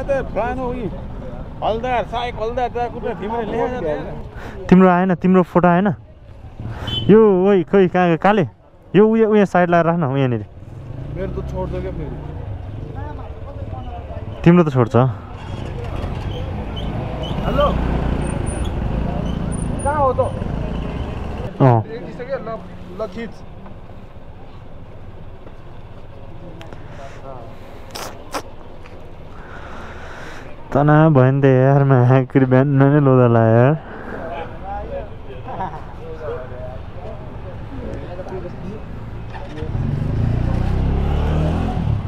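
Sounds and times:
vehicle engine idling: 0.0 - 4.7, 10.4 - 32.2
low street traffic rumble: 0.0 - 42.0.

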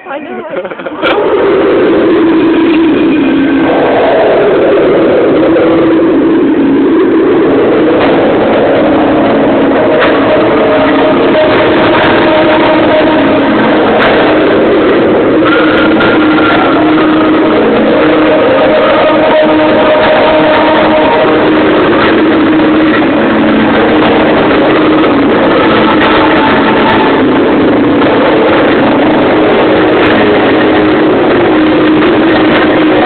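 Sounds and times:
distorted fireworks roar: 0.0 - 33.0
firework cracks: 0.6 - 33.0
held tones: 0.8 - 33.0.

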